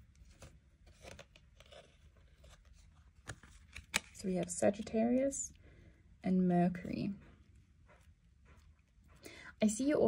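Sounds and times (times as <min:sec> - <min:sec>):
cards clicking and rustling: 0:00.1 - 0:05.0.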